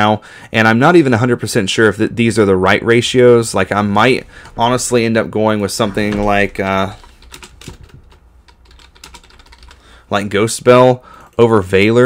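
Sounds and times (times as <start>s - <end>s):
computer keyboard typing: 5.8s - 10.0s.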